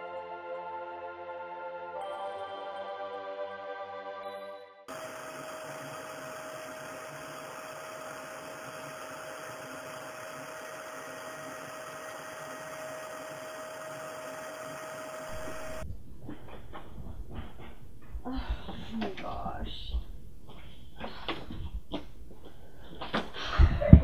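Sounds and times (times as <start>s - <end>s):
music: 0.0s - 4.9s
vacuum cleaner running on carpet: 4.9s - 15.9s.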